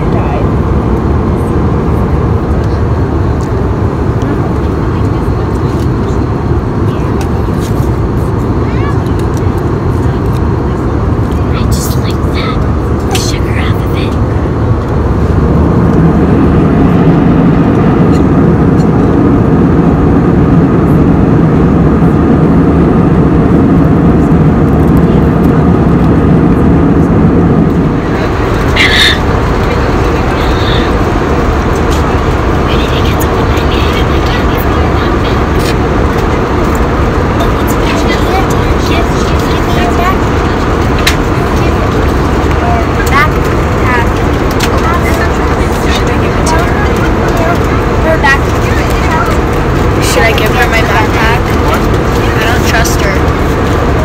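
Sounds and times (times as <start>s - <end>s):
jet engines rumbling: 0.0s - 54.0s
rushing air in cabin: 0.0s - 54.0s.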